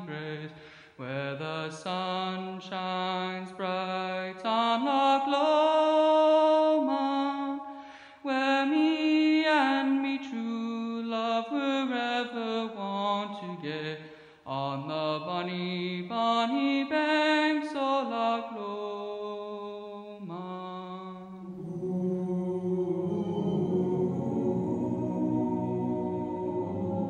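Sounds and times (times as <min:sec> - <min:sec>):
young man singing into microphone: 0:00.0 - 0:21.7.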